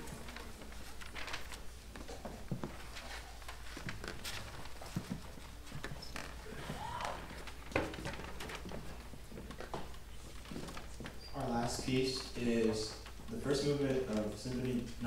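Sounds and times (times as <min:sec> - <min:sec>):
knocks and rustles: 0:00.0 - 0:12.3
footsteps on wooden stage: 0:00.0 - 0:15.0.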